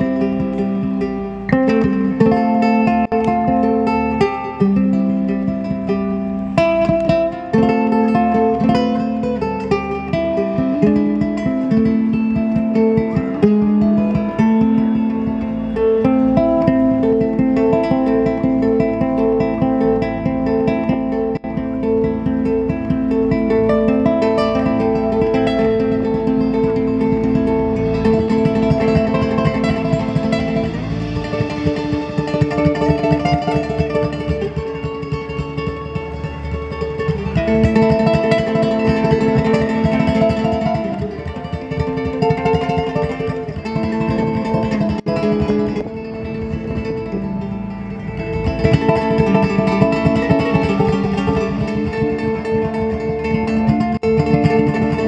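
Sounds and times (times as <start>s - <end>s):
ukulele melody: 0.0s - 55.0s
bass and drums: 27.0s - 55.0s.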